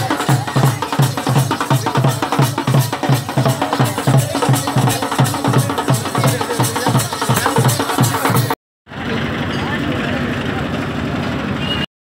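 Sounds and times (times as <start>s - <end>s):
drums beaten fast: 0.0s - 8.6s.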